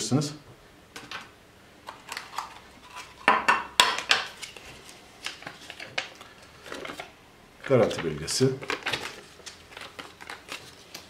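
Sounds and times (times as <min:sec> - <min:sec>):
paper rustling: 0:04.2 - 0:11.0.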